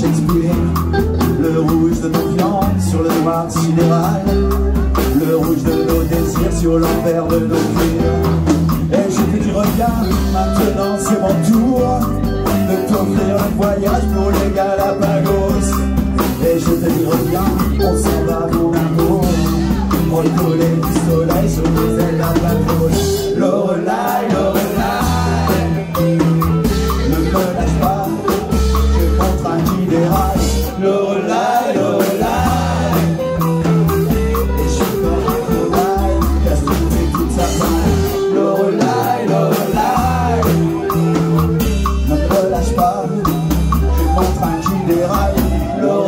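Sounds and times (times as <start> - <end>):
drum kit: 0.0 - 46.0
electric guitars: 0.0 - 46.0
person singing: 0.0 - 46.0.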